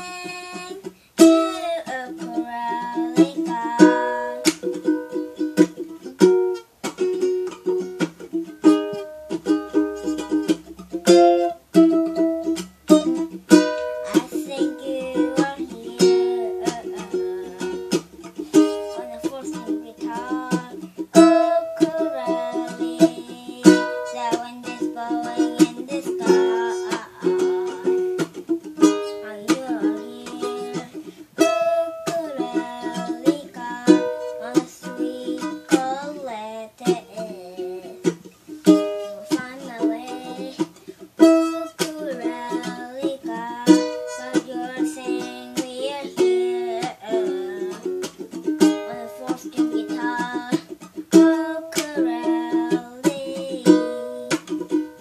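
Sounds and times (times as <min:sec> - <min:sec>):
ukulele playing: 0:00.0 - 0:55.0.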